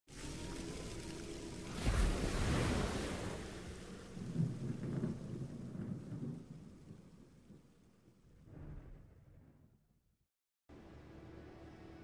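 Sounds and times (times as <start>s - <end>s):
rain hissing: 0.1s - 7.2s
thunder rumbling: 0.1s - 9.7s.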